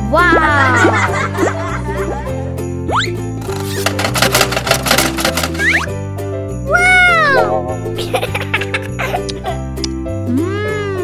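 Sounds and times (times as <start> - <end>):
cheerful background music: 0.0 - 11.0
gumball machine rattling clicks: 3.4 - 5.8.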